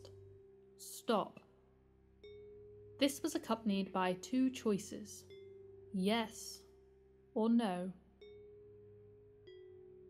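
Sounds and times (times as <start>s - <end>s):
soft chime notes: 8.2s - 10.0s.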